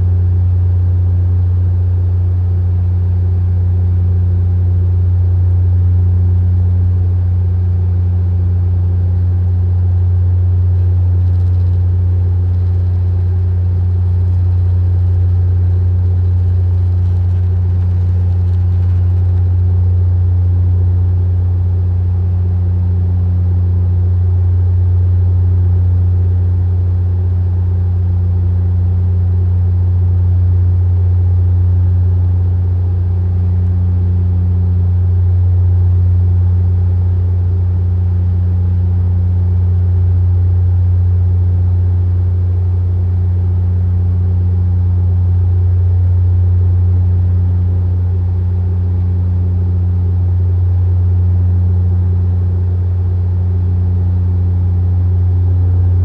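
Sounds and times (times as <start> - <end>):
propeller drone: 9.5 - 22.6.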